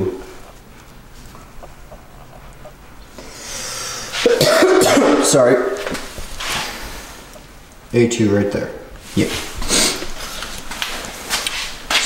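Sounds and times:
workshop hum: 0:00.0 - 0:12.0.

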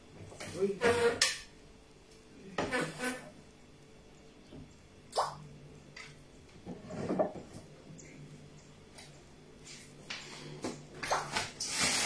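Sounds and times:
plastic bags crinkling: 0:11.2 - 0:12.0.

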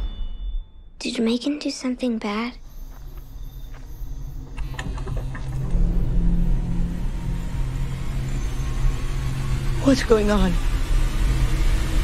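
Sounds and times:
low droning rumble: 0:03.4 - 0:12.0.

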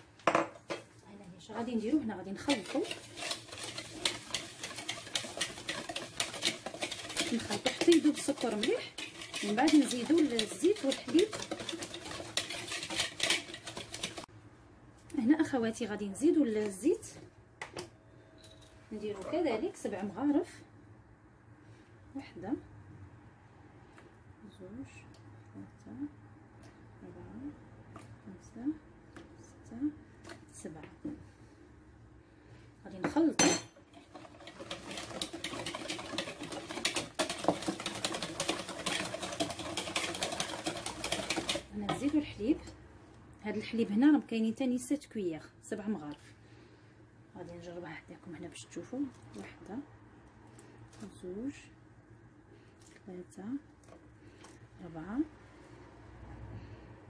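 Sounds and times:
whisk beating in a bowl: 0:01.9 - 0:14.3, 0:33.9 - 0:42.3.

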